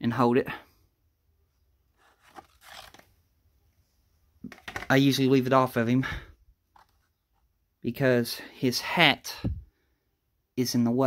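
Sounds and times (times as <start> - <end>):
paper sword scraping sheath: 2.0 - 3.1.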